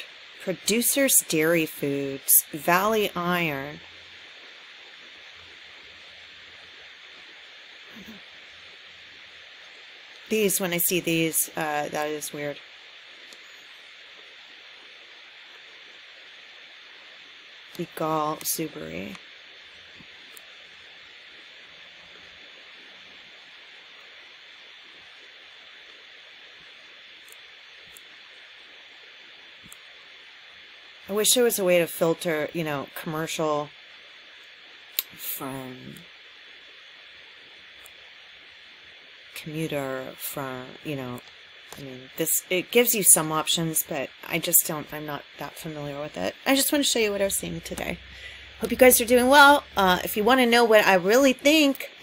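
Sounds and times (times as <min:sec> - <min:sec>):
faint high whine: 0:00.0 - 0:52.0
microphone hiss: 0:00.0 - 0:52.0.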